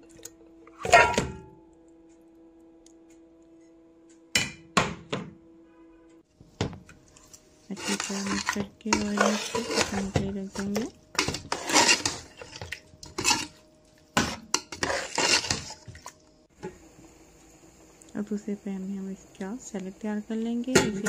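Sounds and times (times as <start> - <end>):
metal spoon scraping steel pot: 7.7 - 13.6, 14.2 - 15.9.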